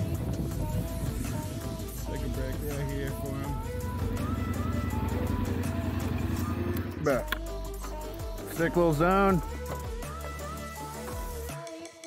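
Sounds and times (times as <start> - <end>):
motorcycle engine idling: 0.0 - 11.4
background music: 0.0 - 12.0.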